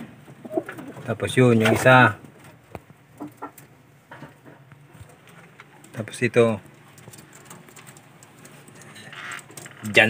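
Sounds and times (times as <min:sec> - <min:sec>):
pigeons calling: 0:00.3 - 0:01.1.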